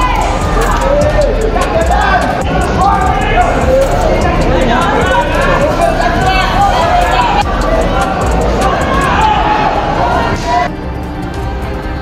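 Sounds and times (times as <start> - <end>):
crowd shouting: 0.0 - 10.7
ringside voices: 0.0 - 12.0.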